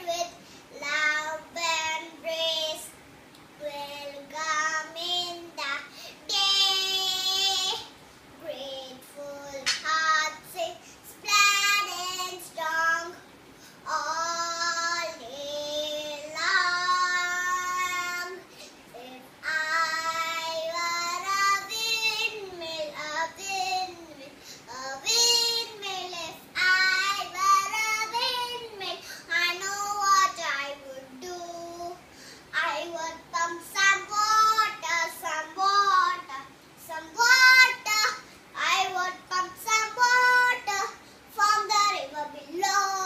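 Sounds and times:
girl singing: 0.0s - 43.0s.

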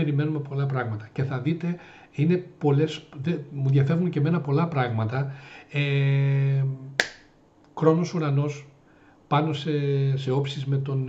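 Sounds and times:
finger snap: 7.0s - 7.8s.

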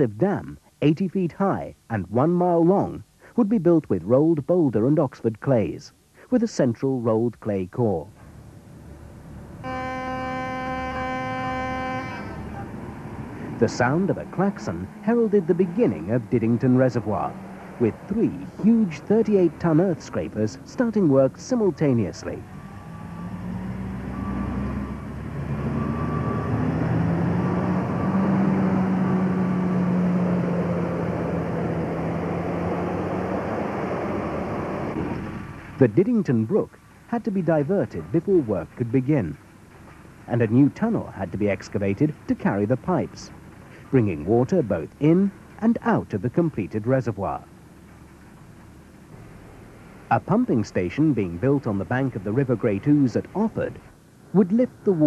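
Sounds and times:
heavy diesel engine drone: 8.2s - 35.8s
klaxon steady note: 9.6s - 12.8s.

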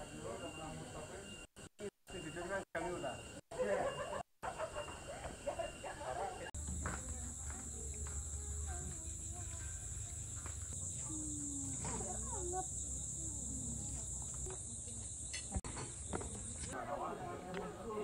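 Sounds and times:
faint distant voices: 4.7s - 18.0s.

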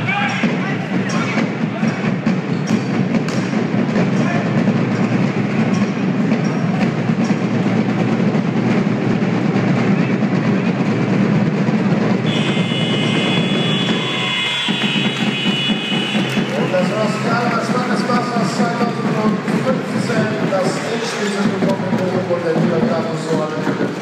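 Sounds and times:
loud crowd noise: 0.0s - 24.0s
steady rhythmic beat: 0.0s - 24.0s
long high shrill tone: 12.3s - 16.3s.

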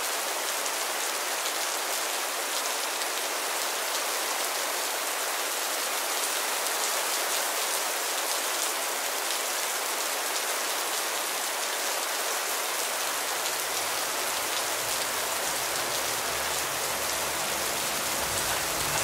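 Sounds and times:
heavy rain pouring: 0.0s - 19.0s.

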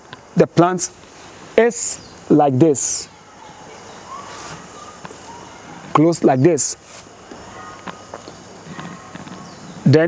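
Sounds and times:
man speaking: 0.4s - 1.0s, 1.6s - 3.2s, 5.8s - 6.9s.

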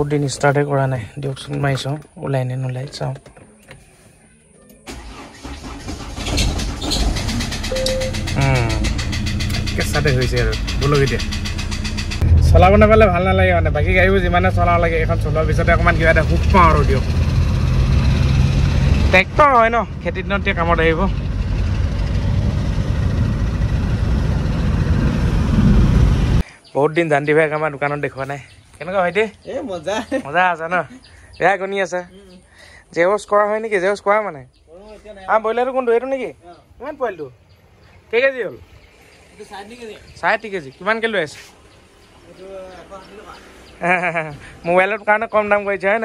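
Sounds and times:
road noise: 0.0s - 46.0s
diesel engine cranking and idling: 4.8s - 26.5s.

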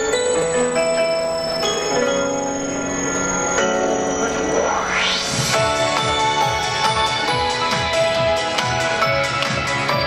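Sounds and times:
bell-like synth chords: 0.0s - 10.0s
rising synth sweep: 1.2s - 6.4s
pop beat: 4.8s - 10.0s.

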